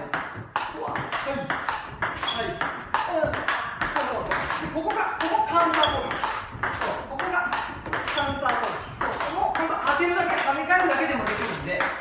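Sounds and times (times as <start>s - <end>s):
table tennis ball ticking: 0.0s - 12.0s.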